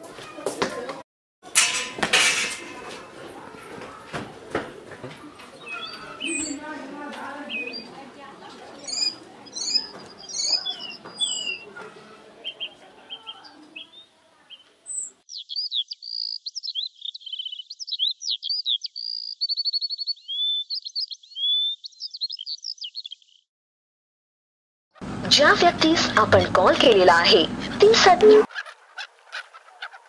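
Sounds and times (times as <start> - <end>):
songbirds chirping and trilling: 2.6 - 23.5, 27.6 - 30.0.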